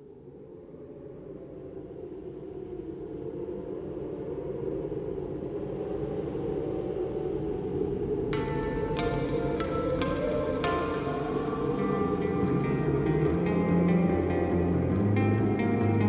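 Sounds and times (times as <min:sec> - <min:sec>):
low rumbling drone: 0:06.2 - 0:16.0.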